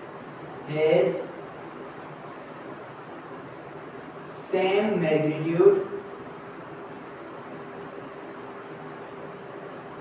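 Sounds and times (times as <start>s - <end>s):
faint constant hum: 0.0s - 10.0s
room hiss: 0.0s - 10.0s.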